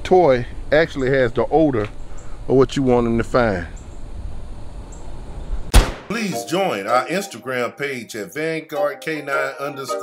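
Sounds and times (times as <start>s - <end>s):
low wind rumble: 0.0s - 5.8s.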